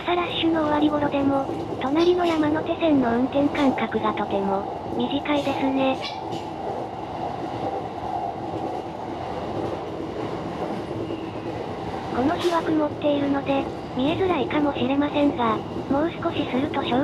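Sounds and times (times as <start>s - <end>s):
train wheels rumbling on rails: 0.0s - 17.0s.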